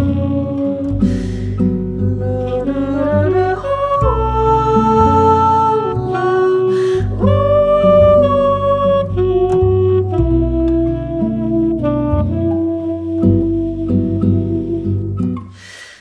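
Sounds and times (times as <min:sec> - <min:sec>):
saxophone melody: 0:00.0 - 0:15.5
plucked double bass: 0:00.0 - 0:15.6
fingerpicked acoustic guitar: 0:00.0 - 0:15.7.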